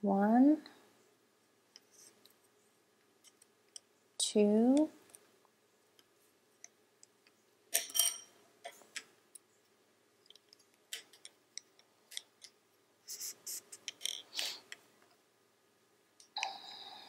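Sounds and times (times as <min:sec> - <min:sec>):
wooden knitting needles clicking: 0:10.2 - 0:12.6.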